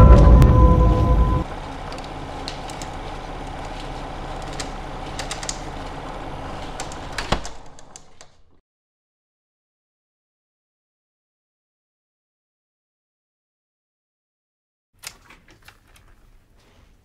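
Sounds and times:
low hum with hiss: 0:00.0 - 0:07.7.

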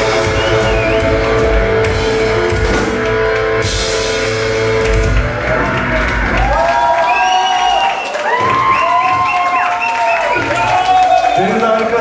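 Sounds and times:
heavy metal band playing live: 0:00.0 - 0:06.7.

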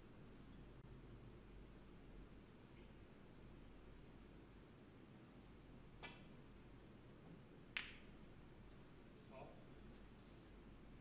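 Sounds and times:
cue tip striking ball: 0:07.7 - 0:08.1
snooker balls clicking together: 0:07.7 - 0:08.2.

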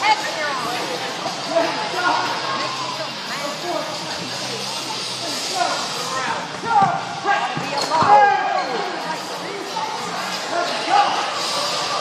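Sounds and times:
voices shouting in echoing gym: 0:00.0 - 0:12.0.

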